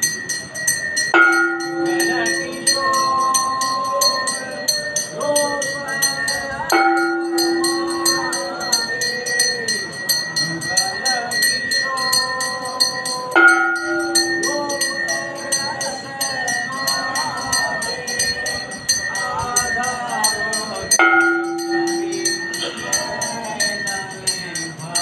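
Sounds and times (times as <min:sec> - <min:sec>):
held musical notes: 0:00.0 - 0:24.9
deep sustained bell ringing: 0:00.0 - 0:25.0
hand bell clanging rapidly: 0:00.0 - 0:25.0.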